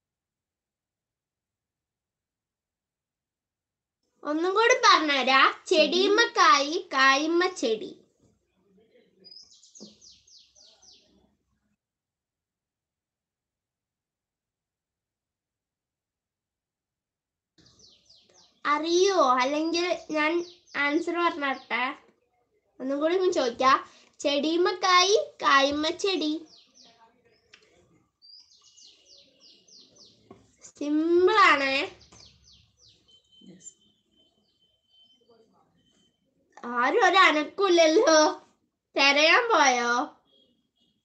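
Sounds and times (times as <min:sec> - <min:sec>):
faint bird chirping: 0:08.4 - 0:11.4, 0:17.6 - 0:37.1, 0:39.8 - 0:41.0.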